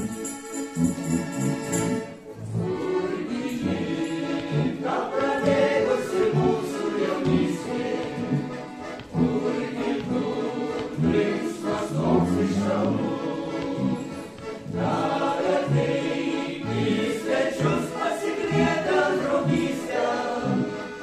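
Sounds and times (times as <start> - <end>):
accordion: 0.0 - 21.0
mixed choir singing in harmony: 1.7 - 21.0.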